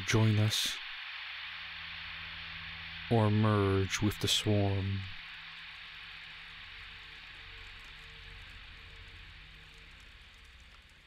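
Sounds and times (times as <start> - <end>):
background hiss: 0.0 - 11.0
faint low drone: 0.0 - 11.0.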